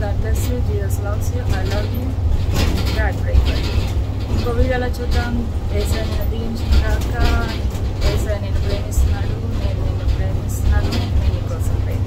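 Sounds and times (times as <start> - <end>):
bus engine low rumble: 0.0 - 12.0.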